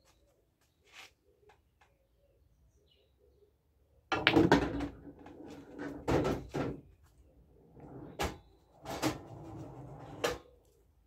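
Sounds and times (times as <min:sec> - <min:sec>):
pool balls clacking: 0:04.1 - 0:06.8
pool balls rolling on table: 0:04.2 - 0:06.8, 0:07.8 - 0:10.4.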